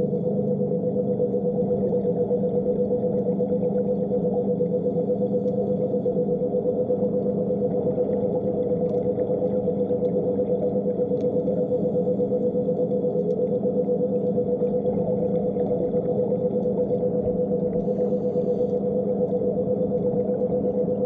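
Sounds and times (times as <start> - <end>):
underwater motor droning hum: 0.0 - 21.0
faint clicks: 5.2 - 5.8, 11.0 - 11.6, 12.7 - 13.6.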